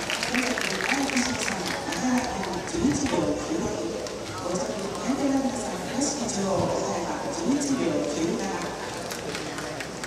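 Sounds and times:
public address announcer: 0.0 - 9.0.

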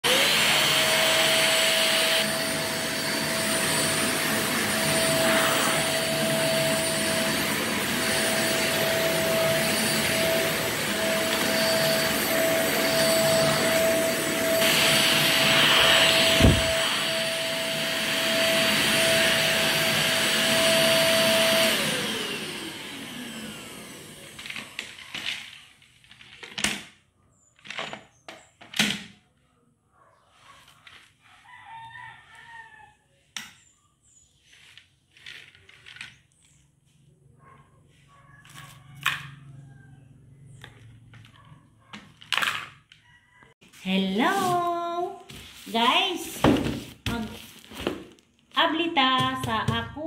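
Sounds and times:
vacuum cleaner whining: 0.0 - 26.6, 43.4 - 50.0.

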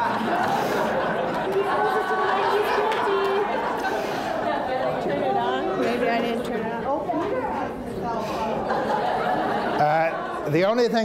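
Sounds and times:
crowd chatter in a hall: 0.0 - 11.0.

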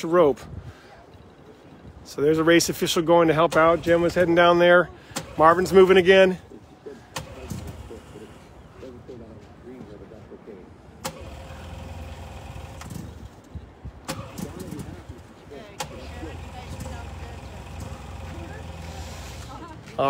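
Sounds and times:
faint distant voices: 0.0 - 20.0
vehicle engine humming: 3.1 - 20.0.

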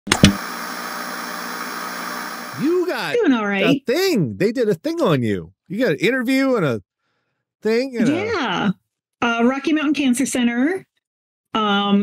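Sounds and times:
static noise hiss: 0.1 - 3.2.

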